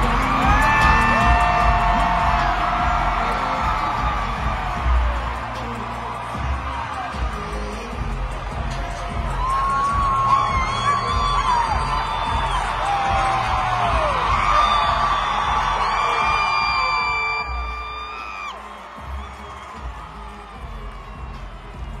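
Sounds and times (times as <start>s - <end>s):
crowd cheering and shouting: 0.0s - 22.0s
loud live music with heavy bass: 0.0s - 22.0s.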